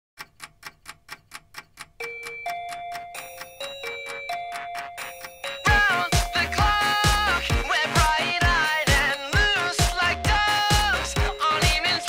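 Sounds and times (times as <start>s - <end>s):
clock ticking: 0.2s - 12.0s
held bell-like notes: 2.0s - 12.0s.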